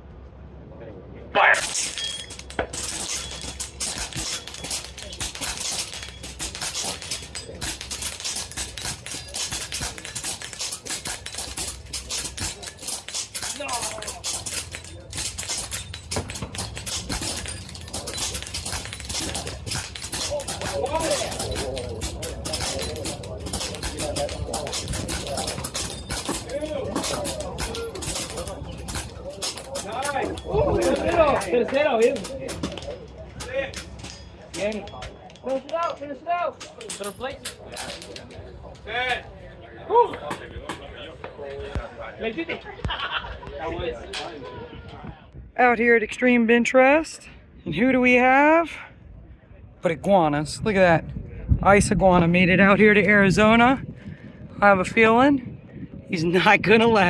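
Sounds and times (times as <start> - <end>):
airguns firing rapidly: 1.5 - 32.6
indistinct voices chattering: 2.3 - 45.4.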